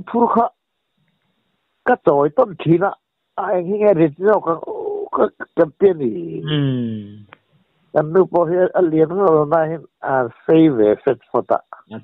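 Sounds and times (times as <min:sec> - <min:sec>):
man talking: 0:00.0 - 0:00.5, 0:01.9 - 0:07.3, 0:08.0 - 0:12.0.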